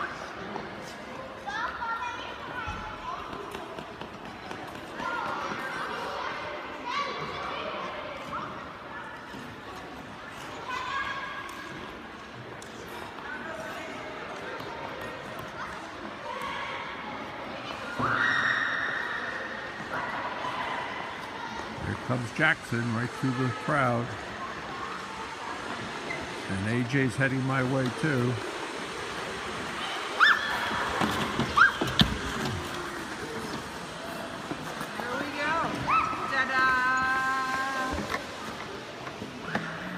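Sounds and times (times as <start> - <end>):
steady background hiss: 16.2 - 39.9
children squealing and calling out: 17.8 - 21.7, 29.8 - 32.2.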